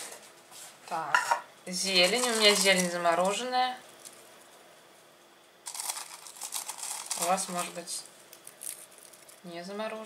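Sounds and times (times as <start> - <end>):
frozen herbs rustling: 1.8 - 4.7, 5.6 - 10.0.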